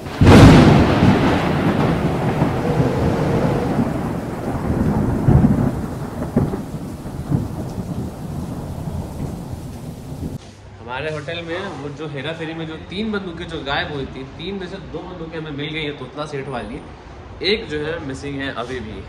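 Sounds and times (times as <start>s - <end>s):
loud boom: 0.0s - 9.4s
rain-like hiss: 0.0s - 10.4s
rolling thunder rumble: 0.0s - 10.4s.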